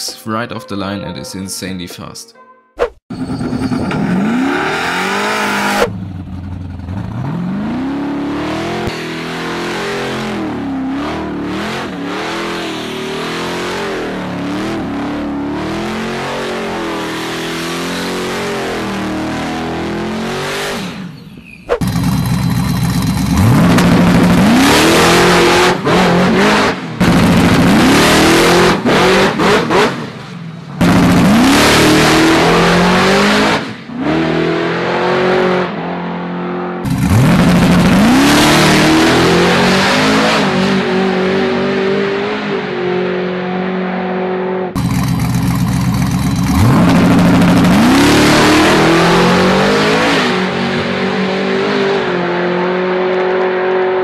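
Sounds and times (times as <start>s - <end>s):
car engine revving hard: 3.4s - 6.0s, 6.9s - 21.2s, 21.8s - 30.2s, 30.8s - 45.4s, 46.4s - 54.0s.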